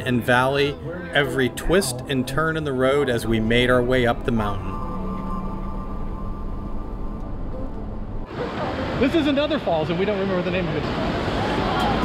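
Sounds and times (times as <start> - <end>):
background music with long held notes: 0.0 - 9.1
minibus road noise: 0.0 - 12.0
rushing river: 8.2 - 12.0.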